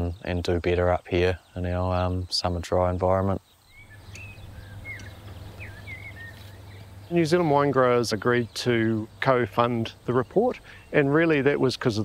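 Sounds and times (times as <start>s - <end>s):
birds whistling: 3.1s - 12.0s
low steady hum: 3.7s - 12.0s.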